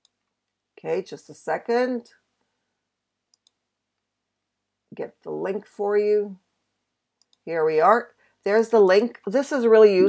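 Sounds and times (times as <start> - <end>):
computer mouse clicks: 3.3 - 3.6, 7.2 - 7.4.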